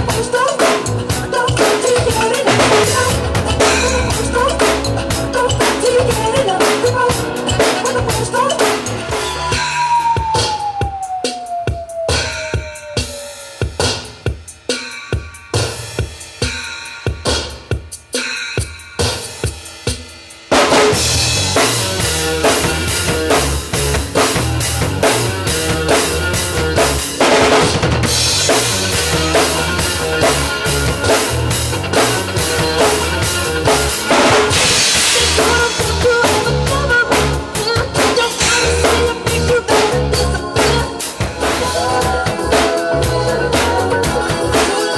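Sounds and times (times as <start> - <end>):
backing music: 0.0 - 44.9
drum kit steady beat: 0.0 - 44.9
bass drum hits: 2.7 - 6.3.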